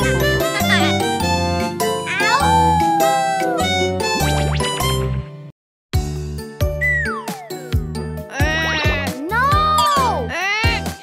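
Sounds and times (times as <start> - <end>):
cartoon character wailing: 2.0 - 3.7
children's music with drum beat: 6.0 - 11.0.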